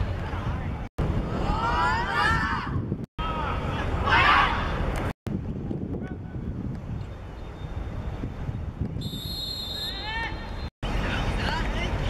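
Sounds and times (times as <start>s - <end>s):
wind rumbling on microphone: 0.0s - 9.3s.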